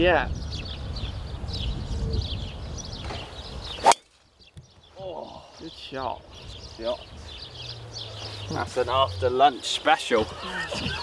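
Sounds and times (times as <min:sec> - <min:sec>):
wind on microphone: 0:00.0 - 0:03.9, 0:10.4 - 0:11.0
golf ball struck by driver: 0:03.8 - 0:04.2.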